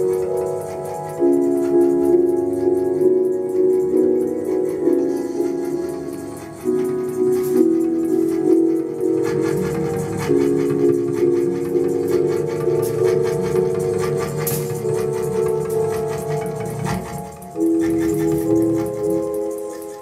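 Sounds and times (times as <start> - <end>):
electronic music with held tones: 0.0 - 20.0.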